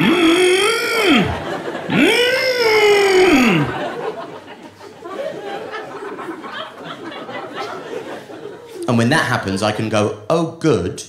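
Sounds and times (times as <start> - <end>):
man's high wordless vocal noise: 0.0 - 4.0.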